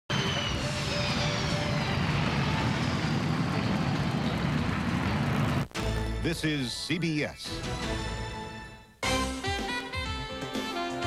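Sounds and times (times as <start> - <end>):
jet engines roaring with whine: 0.1 - 5.7.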